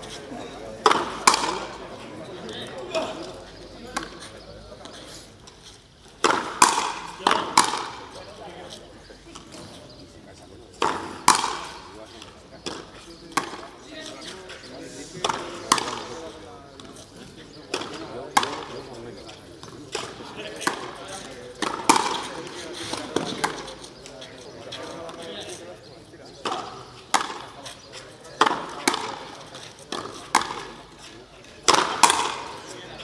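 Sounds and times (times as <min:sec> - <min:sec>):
racket hitting rubber ball: 0:00.8 - 0:01.8, 0:03.9 - 0:04.3, 0:06.2 - 0:08.0, 0:10.8 - 0:11.8, 0:12.6 - 0:13.6, 0:15.2 - 0:16.1, 0:17.7 - 0:18.8, 0:19.6 - 0:21.0, 0:21.6 - 0:23.8, 0:26.4 - 0:27.8, 0:28.4 - 0:30.8, 0:31.6 - 0:32.8.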